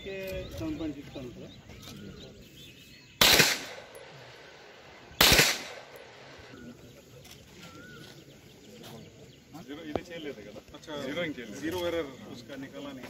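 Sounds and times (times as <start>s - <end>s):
rifle shots with echo: 3.2s - 6.6s.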